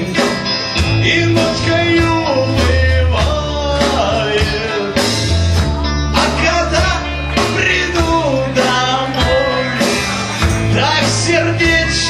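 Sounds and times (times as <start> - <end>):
tambourine shaking: 0.0 - 1.0, 10.0 - 11.4
bass guitar: 0.0 - 12.0
drum kit: 0.0 - 12.0
electric guitar: 0.0 - 12.0
rock band playing: 0.0 - 12.0.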